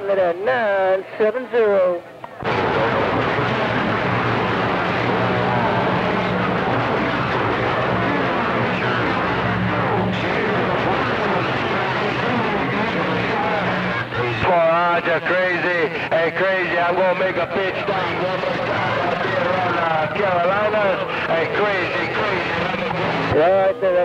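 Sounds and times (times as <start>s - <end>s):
static hiss: 2.1s - 23.4s
steady low hum: 2.1s - 23.9s
garbled radio voice: 4.5s - 24.0s.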